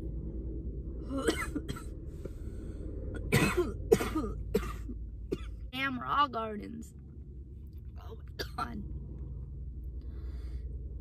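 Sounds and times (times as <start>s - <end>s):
low hum: 0.0s - 11.0s
woman coughing: 1.1s - 1.9s, 3.2s - 5.6s, 8.4s - 8.8s.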